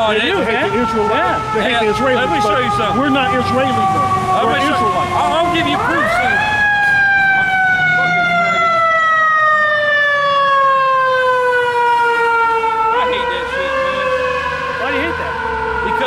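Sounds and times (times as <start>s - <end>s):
emergency vehicle siren wailing: 0.0s - 16.0s.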